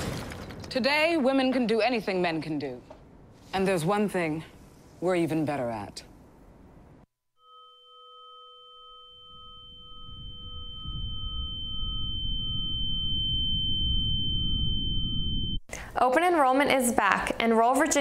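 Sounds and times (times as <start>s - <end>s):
steady electronic tones: 7.4s - 15.7s
low rumble: 9.7s - 15.6s.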